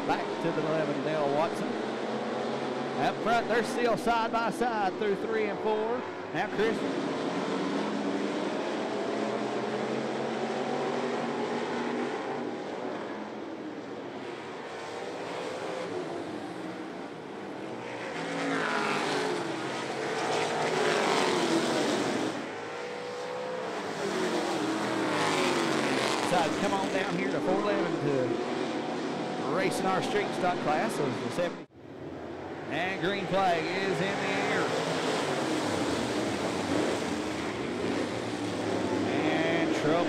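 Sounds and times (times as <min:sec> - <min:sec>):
race car engines revving and passing: 0:00.0 - 0:40.0.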